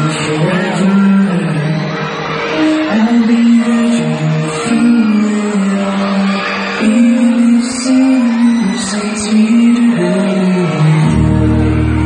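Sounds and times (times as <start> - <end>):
live concert music: 0.0 - 12.0
man singing long notes: 0.0 - 12.0.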